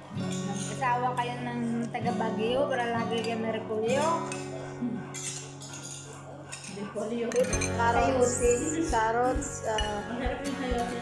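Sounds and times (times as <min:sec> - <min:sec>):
background music: 0:00.0 - 0:11.0
cutlery clinking on dishes: 0:00.1 - 0:00.8, 0:03.0 - 0:08.5.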